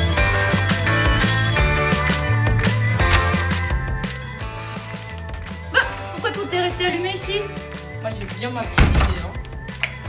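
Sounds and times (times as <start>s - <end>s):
background music: 0.0s - 10.0s
dull thunk: 8.8s - 9.4s.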